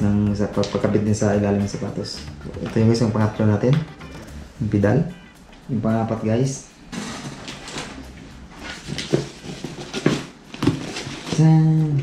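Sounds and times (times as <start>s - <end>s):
cardboard boxes rustling and scraping: 6.9s - 8.0s, 8.6s - 11.5s.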